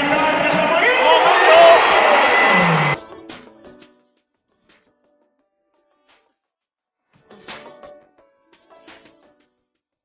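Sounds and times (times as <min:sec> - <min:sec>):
crowd shouting: 0:00.0 - 0:03.0
loud music: 0:00.0 - 0:03.6.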